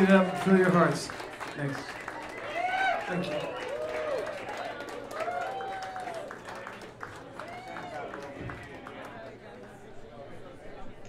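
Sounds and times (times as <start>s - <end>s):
audience clapping: 0.0s - 9.8s
crowd voices: 0.0s - 11.0s.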